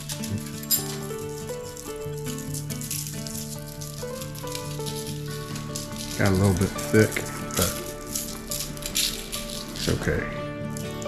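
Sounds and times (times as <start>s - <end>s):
background music with held notes: 0.0s - 11.0s
seasoning rattling from plastic jar: 0.0s - 11.0s.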